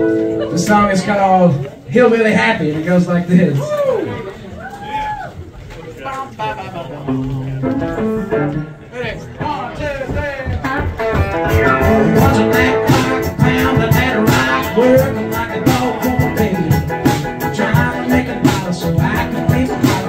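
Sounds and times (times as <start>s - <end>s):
electric guitar playing: 0.0s - 0.7s, 7.0s - 9.3s, 10.7s - 20.0s.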